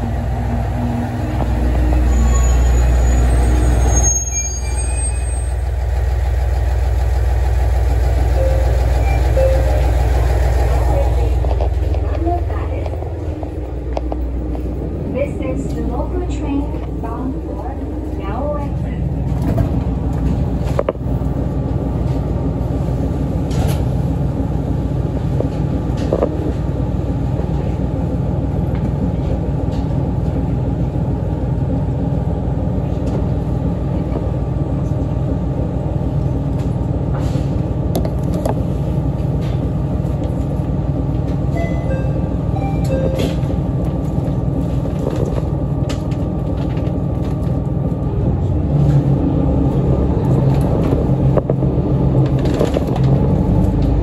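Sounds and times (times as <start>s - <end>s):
diesel railcar engine idling: 0.0s - 54.0s.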